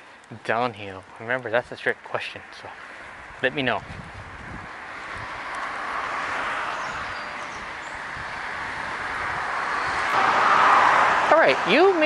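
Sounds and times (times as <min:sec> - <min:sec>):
cars passing on road: 0:02.3 - 0:12.0.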